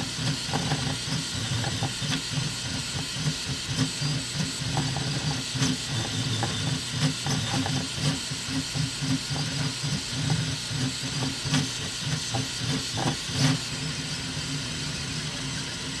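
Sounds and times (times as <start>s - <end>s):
stepper motors humming: 0.0s - 16.0s.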